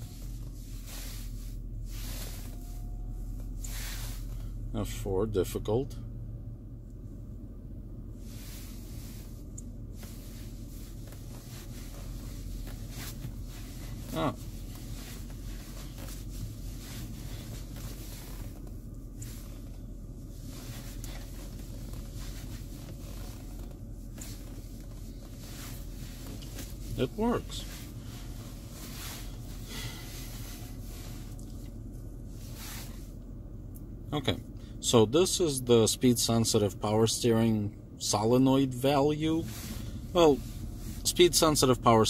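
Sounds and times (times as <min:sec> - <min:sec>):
car engine idling: 0:00.0 - 0:42.0.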